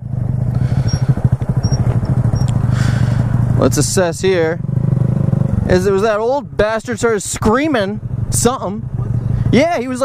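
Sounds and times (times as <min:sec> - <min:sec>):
motorcycle engines idling: 0:00.0 - 0:10.0.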